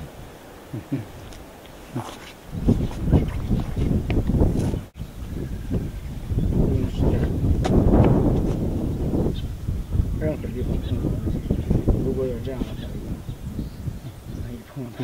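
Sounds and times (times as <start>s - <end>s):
wind noise on microphone: 0.0s - 15.0s
feet shuffling on paving stones: 1.1s - 4.9s, 7.6s - 8.7s.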